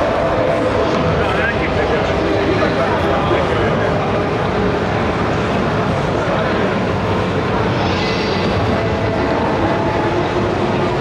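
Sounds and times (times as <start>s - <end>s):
busy exhibition hall din: 0.0s - 11.0s.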